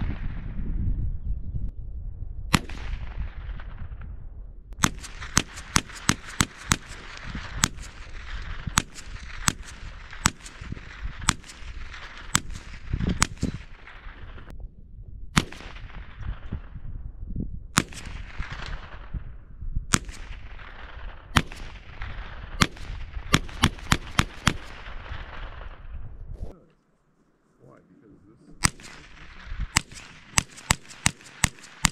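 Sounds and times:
rifle shots with echo: 2.5s - 4.2s, 4.8s - 14.5s, 15.4s - 16.9s, 17.7s - 26.1s, 28.6s - 31.9s.

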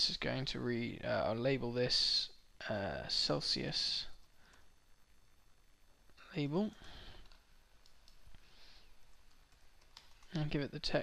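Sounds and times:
computer keyboard and mouse clicks: 6.7s - 8.2s, 9.1s - 10.4s.

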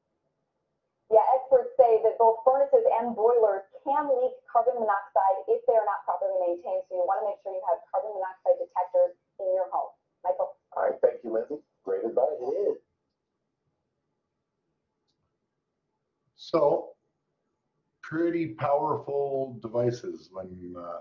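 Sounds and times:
news report speech: 1.1s - 12.8s, 16.4s - 16.8s, 18.0s - 21.0s.

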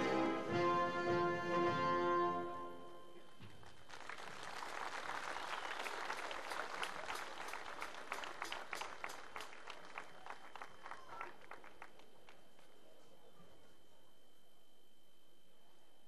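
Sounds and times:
audience applauding: 3.5s - 12.8s.

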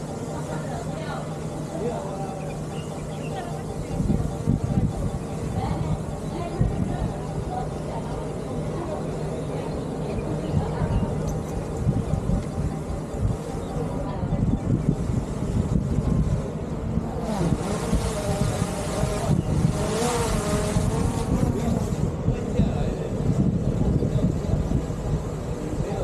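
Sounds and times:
drone propellers buzzing: 0.0s - 26.0s
wind rumble on microphone: 1.8s - 26.0s.

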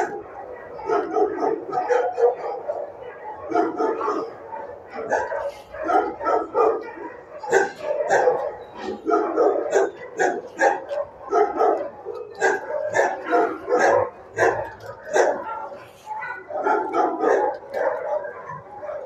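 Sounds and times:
dogs barking: 0.0s - 19.0s.

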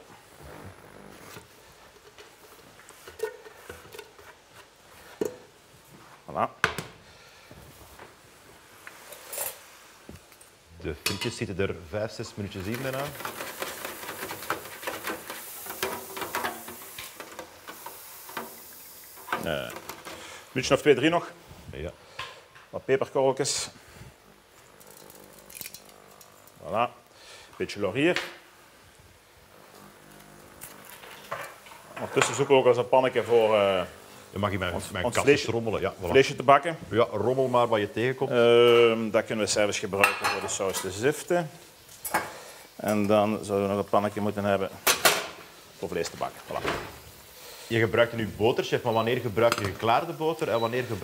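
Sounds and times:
low kitchen background: 0.0s - 51.0s
peppercorns dropping into saucepan: 12.4s - 20.2s, 24.6s - 26.4s.

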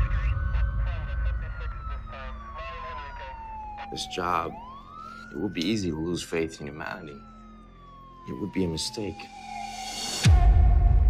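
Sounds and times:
police siren wailing: 0.0s - 10.5s.

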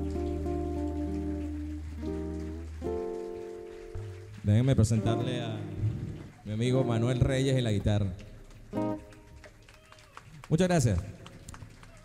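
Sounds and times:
live band playing: 0.0s - 7.4s, 8.7s - 9.8s.

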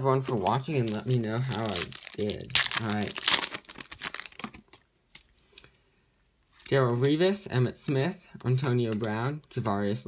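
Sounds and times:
trading cards being handled: 0.2s - 5.8s.

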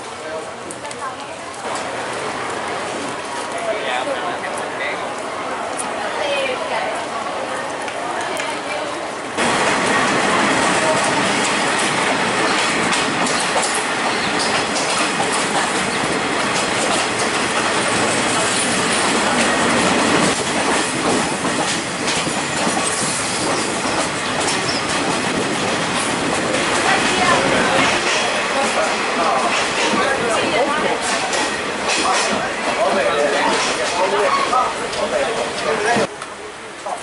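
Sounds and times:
train rattling rumble: 0.0s - 37.0s
wheels clattering over rails: 9.4s - 36.1s.

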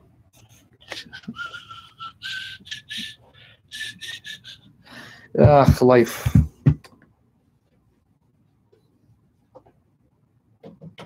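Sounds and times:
soft breathy whistling: 0.9s - 5.3s.

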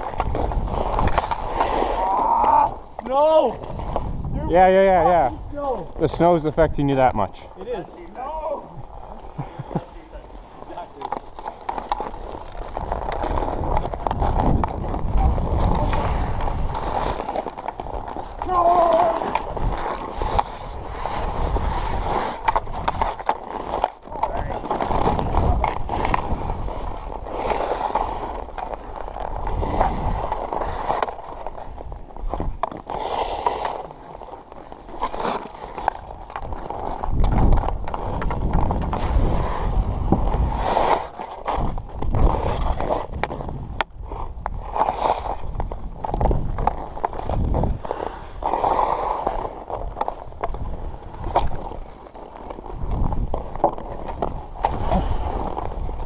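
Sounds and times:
hockey sticks clicking: 0.0s - 4.1s, 9.3s - 55.9s
ice skate blades scraping ice: 0.0s - 56.0s.

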